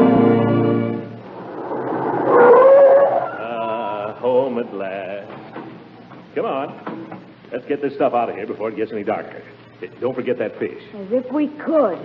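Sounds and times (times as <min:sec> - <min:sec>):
dog-like howl: 0:01.8 - 0:04.0.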